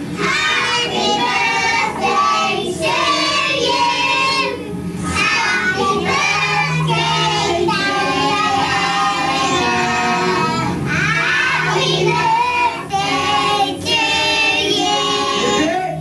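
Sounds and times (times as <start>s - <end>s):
children singing: 0.1s - 15.8s.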